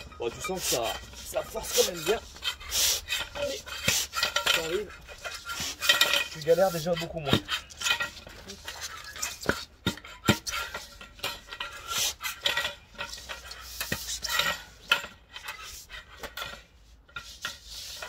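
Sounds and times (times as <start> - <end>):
foam scraping on metal bar: 0.0 - 18.0.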